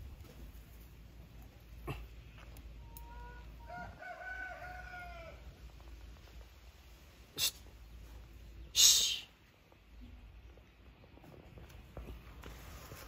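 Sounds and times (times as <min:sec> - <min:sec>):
faint rooster crowing: 0:02.8 - 0:05.8.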